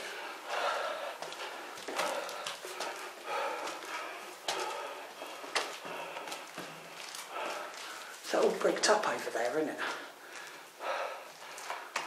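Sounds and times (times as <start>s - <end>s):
footsteps on concrete floor: 0.0s - 10.7s, 11.3s - 12.0s.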